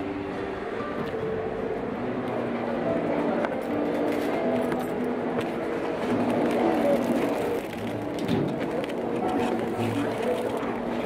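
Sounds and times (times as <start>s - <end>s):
store interior hum: 0.0s - 11.0s.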